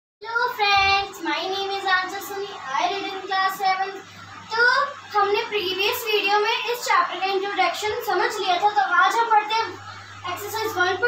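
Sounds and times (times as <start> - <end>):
girl singing: 0.2 - 11.0.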